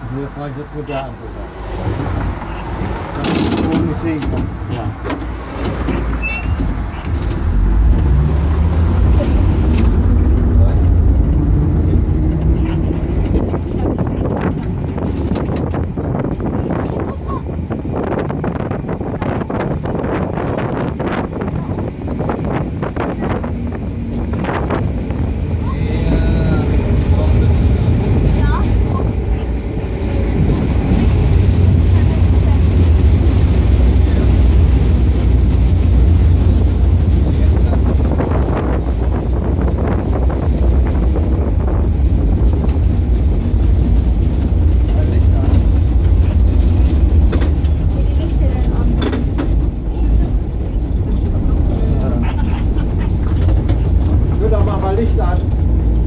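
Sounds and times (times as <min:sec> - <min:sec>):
tram rumbling on rails: 0:00.0 - 0:56.0.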